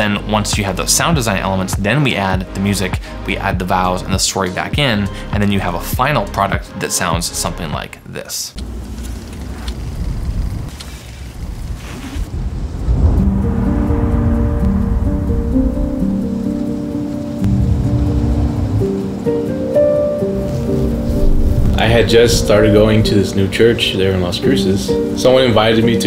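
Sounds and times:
rain: 0:08.6 - 0:26.0
low rumble: 0:11.4 - 0:19.5, 0:20.3 - 0:23.3
music of long sustained notes: 0:12.6 - 0:26.0.

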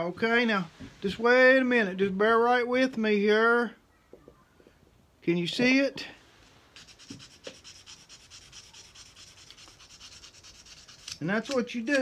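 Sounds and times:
sandpaper rubbing on metal: 0:06.8 - 0:12.0.

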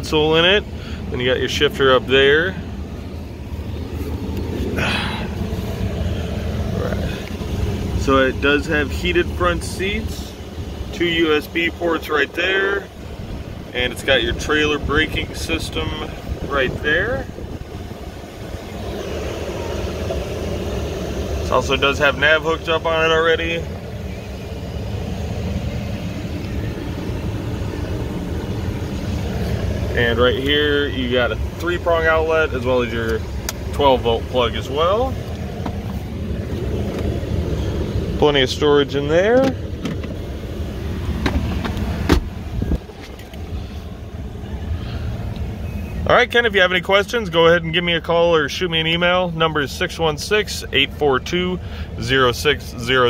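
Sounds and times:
engine idling inside cab: 0:00.0 - 0:53.0
low cabin hum: 0:00.0 - 0:53.0.

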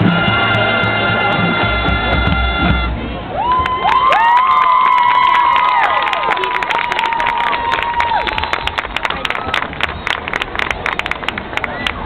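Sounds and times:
marching band chord: 0:00.0 - 0:03.2
crowd cheering with whoops: 0:03.3 - 0:08.9
crowd clapping: 0:03.4 - 0:12.0.

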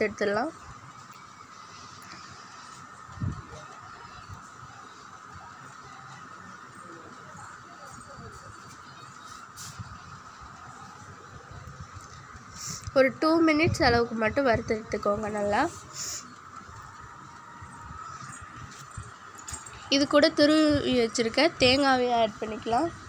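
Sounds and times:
steady hum: 0:00.0 - 0:23.0.

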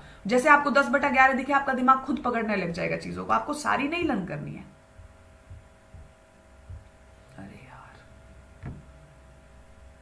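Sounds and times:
low steady hum: 0:00.0 - 0:10.0
soft knock: 0:05.0 - 0:06.9, 0:08.6 - 0:08.9
woman whispering: 0:07.2 - 0:08.2.

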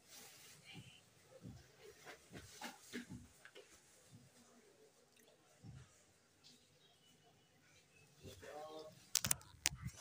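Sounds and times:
cloth rustling and knocking: 0:01.3 - 0:04.4.

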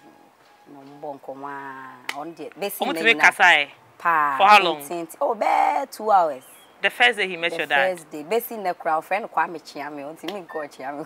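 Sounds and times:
person speaking quickly: 0:02.8 - 0:03.7, 0:04.4 - 0:05.0, 0:06.8 - 0:08.0.

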